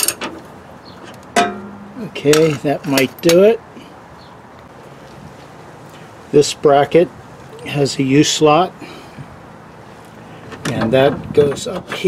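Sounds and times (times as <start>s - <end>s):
ringing metal clank: 1.4s - 2.0s.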